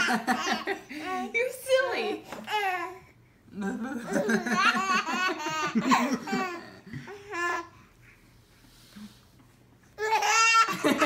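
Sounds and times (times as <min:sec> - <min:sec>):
baby laughing: 0:00.0 - 0:00.9, 0:04.1 - 0:07.7, 0:10.0 - 0:11.0.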